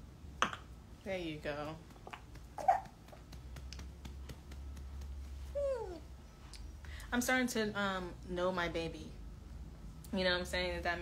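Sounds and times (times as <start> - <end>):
low steady hum: 0.0 - 11.0
baby whimpering: 2.6 - 2.9, 5.5 - 6.0.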